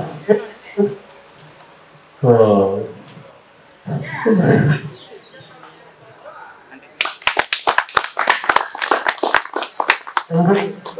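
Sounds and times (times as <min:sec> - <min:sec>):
people clapping: 0:07.0 - 0:10.9.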